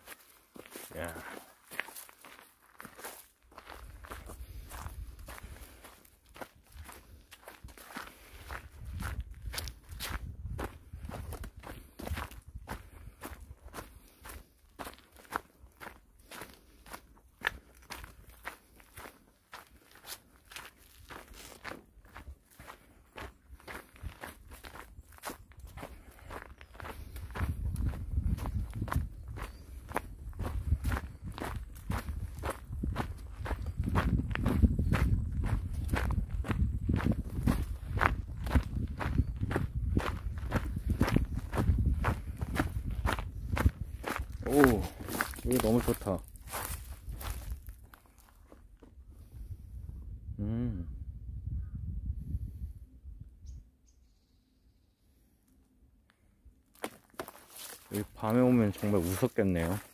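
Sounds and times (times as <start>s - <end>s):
footsteps on gravel: 0.0s - 48.9s, 56.7s - 59.9s.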